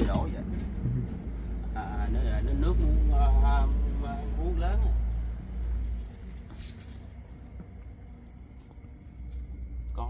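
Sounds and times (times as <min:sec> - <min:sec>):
low rumble: 0:00.0 - 0:08.4
crickets chirring: 0:00.0 - 0:10.0.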